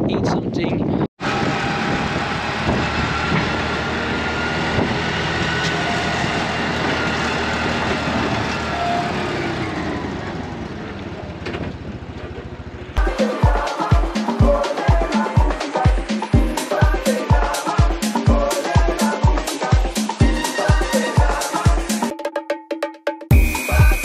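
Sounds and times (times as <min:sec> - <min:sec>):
traffic noise: 0:01.2 - 0:13.0
dance music with heavy bass beat: 0:13.0 - 0:22.1, 0:23.3 - 0:24.0.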